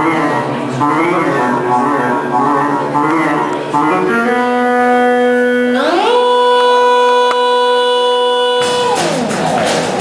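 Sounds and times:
drums and cymbals: 8.6s - 10.0s.

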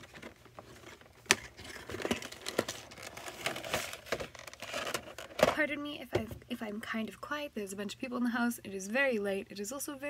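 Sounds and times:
cardboard rustling: 0.0s - 5.6s
plastic tray crinkling: 0.0s - 5.7s.

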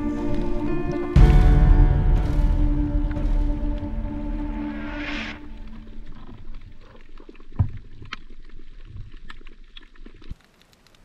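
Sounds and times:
background music: 0.0s - 6.4s
low rumble: 0.0s - 7.0s
loud hiss: 1.2s - 5.9s
underwater crackling clicks: 6.0s - 11.0s.

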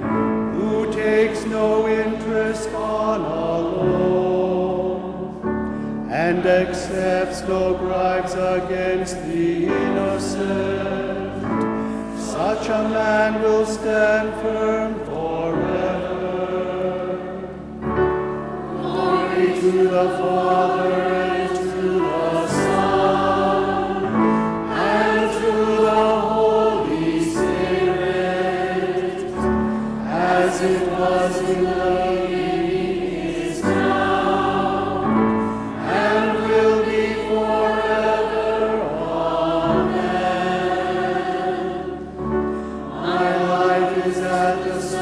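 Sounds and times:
choir singing: 0.0s - 45.0s
singers breathing: 5.6s - 6.1s, 11.6s - 12.2s, 24.2s - 24.7s, 29.6s - 30.1s, 35.3s - 35.8s, 42.4s - 43.0s.

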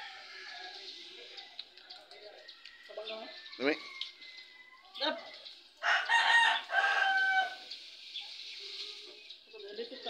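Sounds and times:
rooster crowing: 5.8s - 7.6s.

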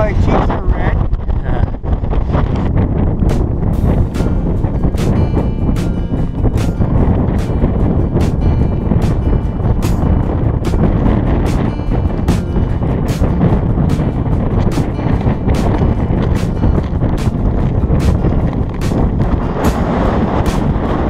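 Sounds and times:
wind buffeting microphone: 0.0s - 21.0s
background music with steady beat: 3.2s - 21.0s.

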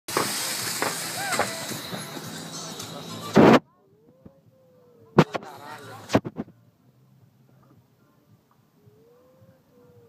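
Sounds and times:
loud burst of noise: 0.1s - 3.6s
rush of water spray and wind: 0.1s - 3.6s.

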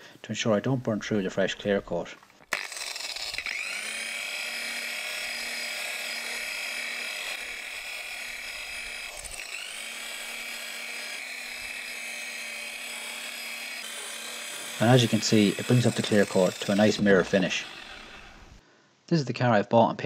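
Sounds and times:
electric polisher whining: 2.6s - 18.6s.

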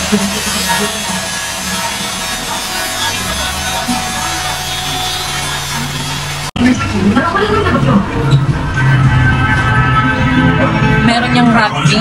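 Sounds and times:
angle grinder grinding metal: 0.0s - 6.6s.

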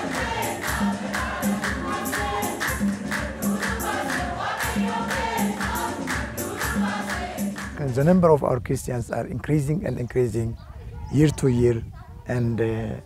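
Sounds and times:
church choir singing: 0.0s - 7.8s
quick percussive beat: 0.0s - 8.0s.

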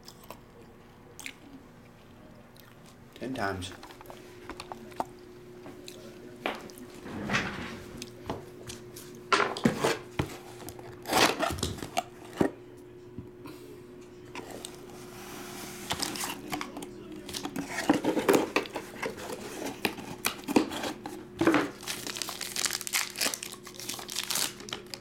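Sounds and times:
wrapper crinkling: 21.7s - 25.0s.

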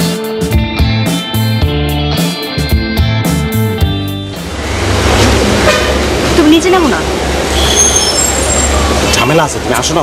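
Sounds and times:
traffic rumble: 3.9s - 10.0s.

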